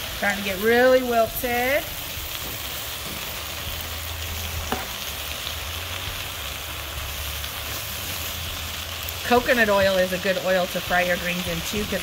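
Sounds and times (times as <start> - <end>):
greens sizzling in oil: 0.0 - 12.0.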